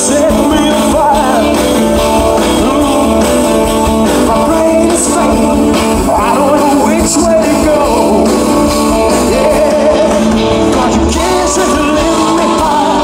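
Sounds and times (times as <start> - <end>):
man singing into microphone: 0.0 - 13.0
rock band playing: 0.0 - 13.0.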